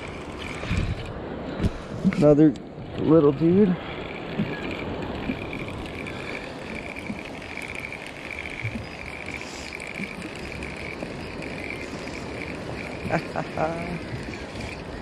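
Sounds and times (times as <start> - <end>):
fishing reel gears whirring: 0.0 - 1.2, 3.2 - 15.0.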